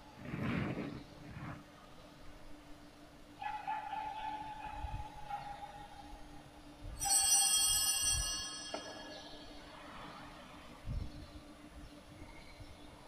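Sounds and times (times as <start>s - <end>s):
bright bell-like tone: 7.0s - 9.7s.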